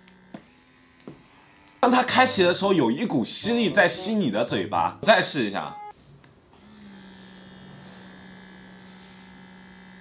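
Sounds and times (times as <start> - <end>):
small pump motor humming: 0.0 - 2.2, 6.6 - 10.0.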